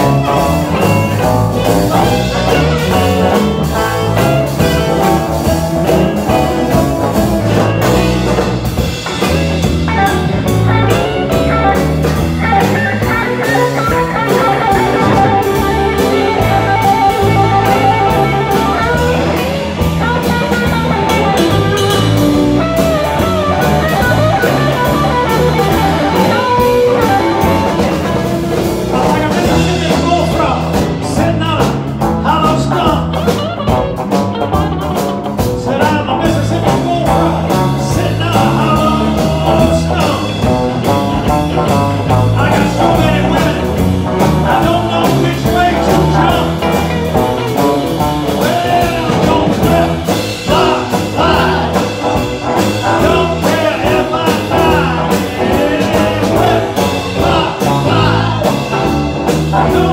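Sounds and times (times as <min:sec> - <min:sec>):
bass line: 0:00.0 - 0:59.9
drum kit: 0:00.0 - 0:59.9
electric guitar: 0:00.0 - 0:59.9.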